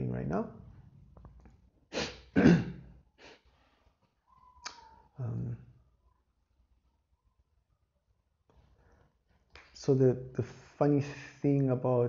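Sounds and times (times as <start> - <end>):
man coughing: 2.0 - 2.9.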